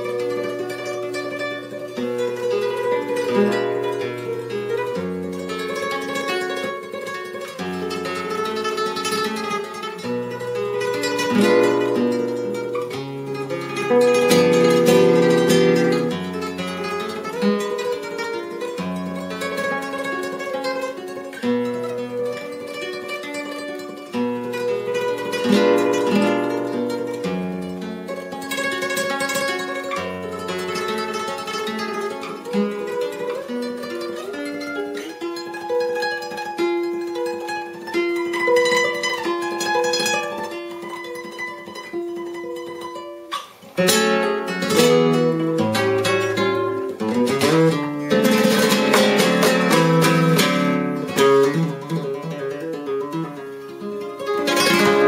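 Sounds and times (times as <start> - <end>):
flamenco guitar playing: 0.0 - 55.0.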